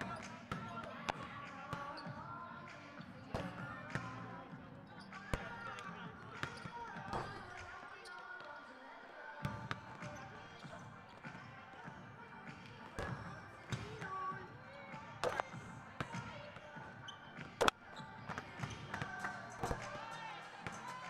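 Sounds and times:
indistinct voices: 0.0s - 21.0s
basketballs bouncing on hardwood: 3.3s - 4.1s, 5.3s - 7.7s, 12.7s - 21.0s.

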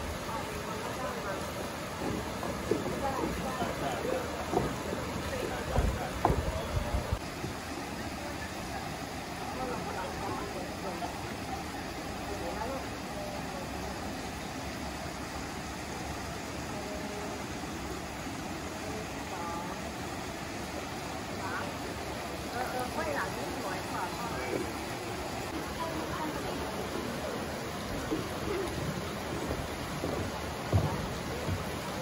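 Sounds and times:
chatter of many voices: 0.0s - 20.4s, 21.2s - 32.0s
river rushing over a weir: 0.0s - 32.0s
low thumps: 2.0s - 7.2s, 27.8s - 32.0s.

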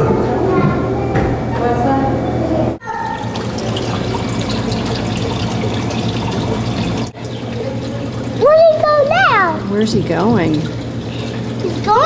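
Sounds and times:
child's voice: 0.0s - 1.3s, 8.4s - 9.7s, 11.6s - 12.0s
low steady hum: 0.1s - 12.0s
water trickling and splashing: 2.9s - 12.0s.

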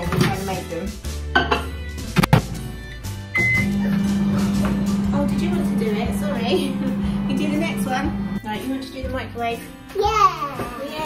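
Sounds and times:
microwave button beep: 3.4s - 4.8s
microwave oven humming: 3.4s - 8.5s.

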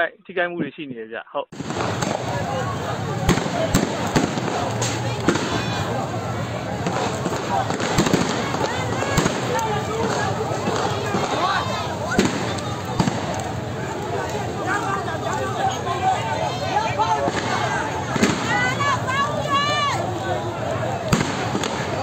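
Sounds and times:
crowd shouting: 1.6s - 22.0s
gunshot bangs: 3.2s - 5.8s, 21.1s - 22.0s.

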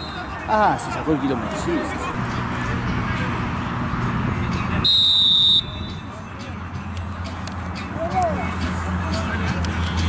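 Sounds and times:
referee's whistle blast: 0.0s - 0.2s, 4.8s - 6.0s
players' voices: 0.0s - 4.8s.

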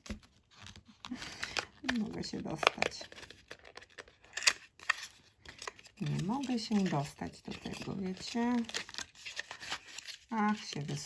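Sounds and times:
packaging clicking and snapping: 0.0s - 11.0s.

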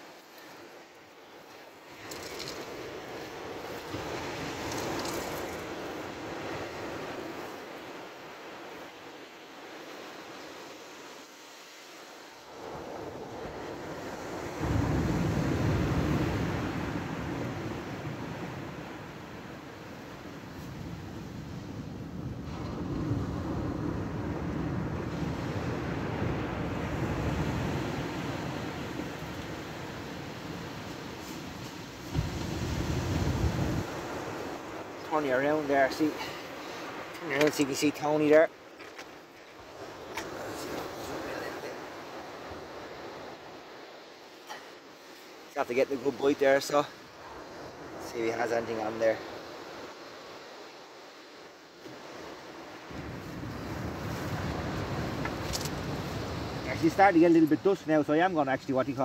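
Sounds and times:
wind buffeting microphone: 20.0s - 35.1s, 52.9s - 57.2s.

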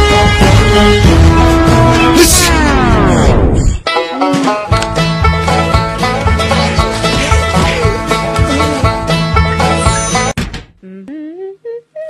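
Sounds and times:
banjo-led bluegrass music: 3.8s - 9.8s
person humming: 7.2s - 9.0s, 10.8s - 12.0s.

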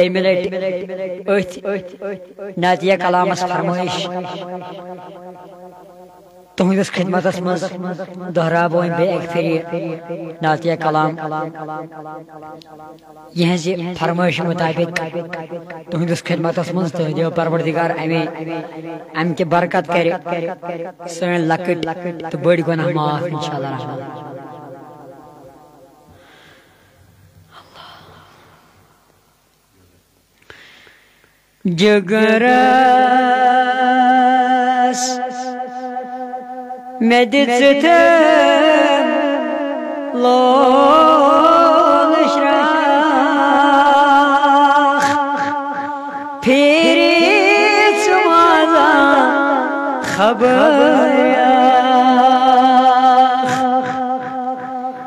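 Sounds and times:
boy's sharp intake of breath: 26.1s - 28.8s, 30.4s - 31.6s
hummed vocal drone: 27.4s - 29.0s, 37.5s - 55.0s.

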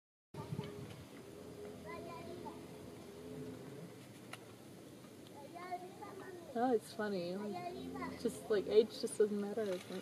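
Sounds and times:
faint background voices: 0.4s - 10.0s
steady thin hum: 0.4s - 10.0s.

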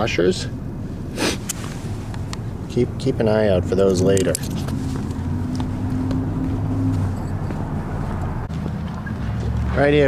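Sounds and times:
motor vehicle rumbling: 0.0s - 10.0s.

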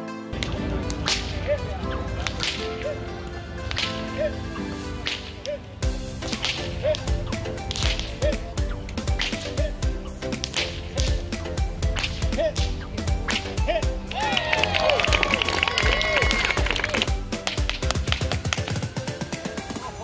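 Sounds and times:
upbeat background music: 0.0s - 20.0s
whip cracking: 0.4s - 3.0s, 3.6s - 18.9s.

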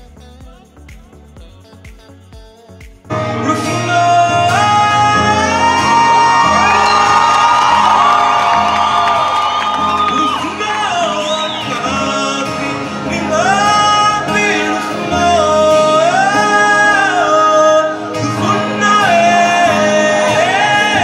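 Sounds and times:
man singing: 0.0s - 7.3s, 10.0s - 21.0s
acoustic guitar: 0.0s - 21.0s.

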